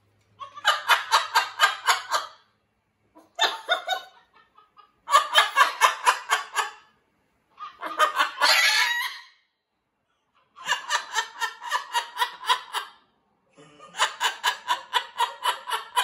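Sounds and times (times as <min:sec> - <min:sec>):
parrot calling: 0:03.1 - 0:09.5.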